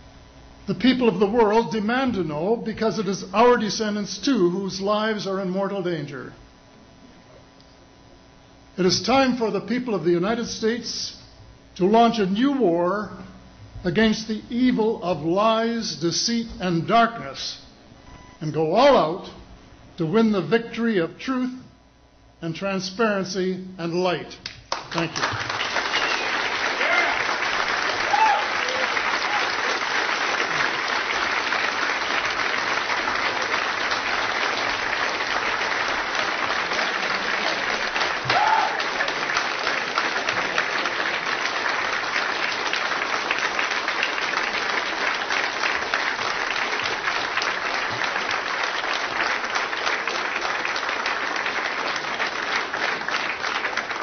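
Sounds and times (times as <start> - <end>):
audience applauding: 24.7 - 54.0.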